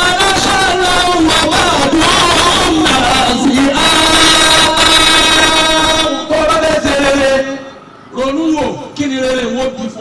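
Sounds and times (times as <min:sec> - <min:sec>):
man singing a long note: 0:00.0 - 0:07.8.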